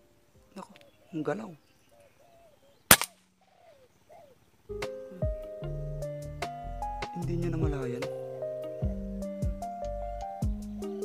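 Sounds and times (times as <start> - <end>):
dove cooing: 0.8 - 2.8, 3.4 - 4.5
air rifle shot: 2.9 - 3.2.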